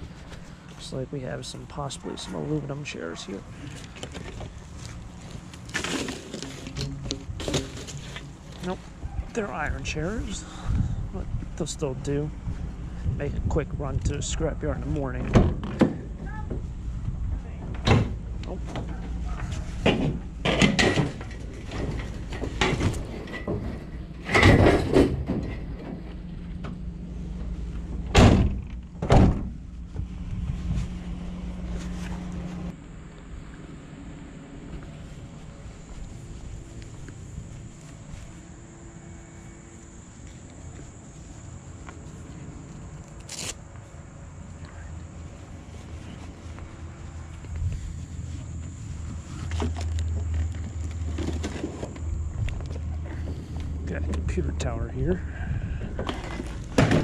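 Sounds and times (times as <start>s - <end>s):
metal chairs clanking: 5.7s - 8.7s.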